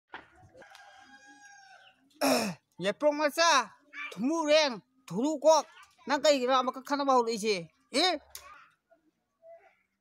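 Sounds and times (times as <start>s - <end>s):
faint rooster crowing: 0.5s - 2.0s.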